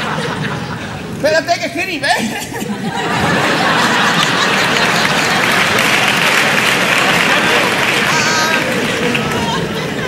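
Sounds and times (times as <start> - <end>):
audience applauding: 3.2 - 10.0.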